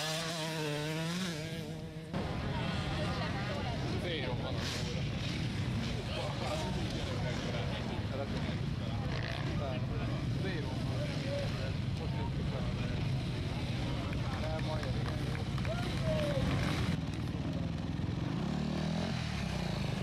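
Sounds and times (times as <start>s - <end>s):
motorcycle engines running: 0.0s - 20.0s
crowd talking: 2.0s - 18.5s.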